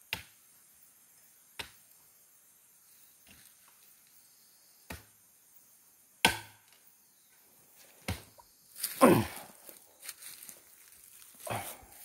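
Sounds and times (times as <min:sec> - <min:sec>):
chopping strikes on wood: 0:00.1 - 0:00.4, 0:01.6 - 0:01.8, 0:04.9 - 0:05.1, 0:06.2 - 0:06.8, 0:08.0 - 0:08.3.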